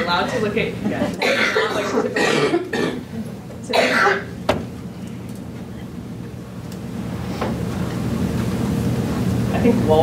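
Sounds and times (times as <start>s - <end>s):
low room rumble: 0.0s - 10.0s.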